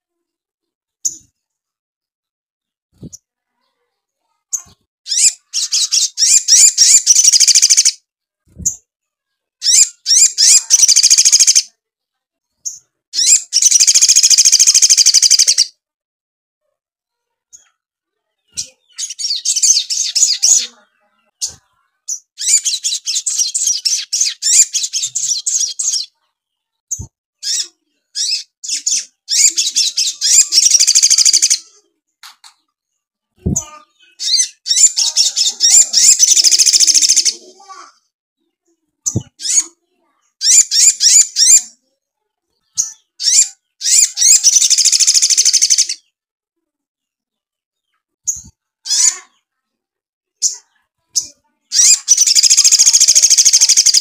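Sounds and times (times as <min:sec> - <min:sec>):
bird chattering trills: 0:05.1 - 0:08.0, 0:09.6 - 0:11.7, 0:13.2 - 0:15.7, 0:21.4 - 0:26.1, 0:27.4 - 0:31.8, 0:33.5 - 0:37.8, 0:42.8 - 0:46.0, 0:51.2 - 0:54.0.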